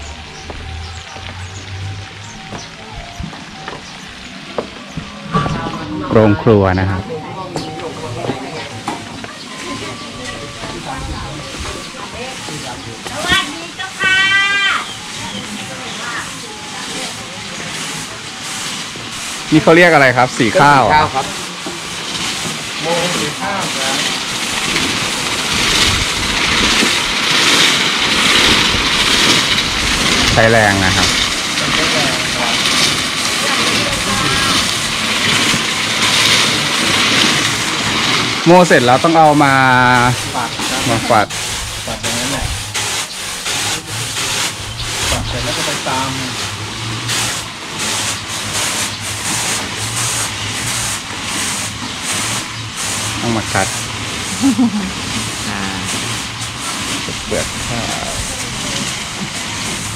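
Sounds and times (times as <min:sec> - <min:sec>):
rice swishing on woven trays: 0:09.3 - 0:59.9
millstones grinding rasp: 0:17.1 - 0:59.9.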